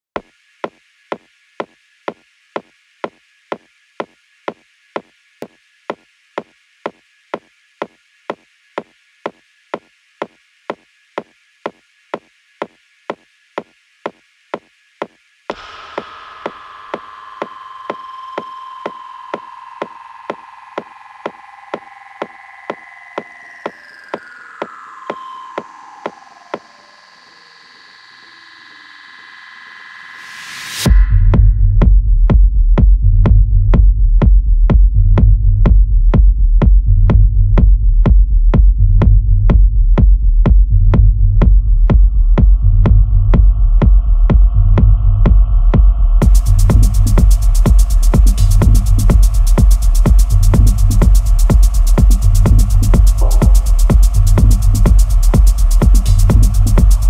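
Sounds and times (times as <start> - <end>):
steady high noise hiss: 0.5 - 30.9, 46.2 - 57.0
drum machine hit repeating: 15.5 - 24.3, 39.5 - 57.0
sustained synth tones: 42.7 - 57.0
hissing riser: 46.2 - 57.0.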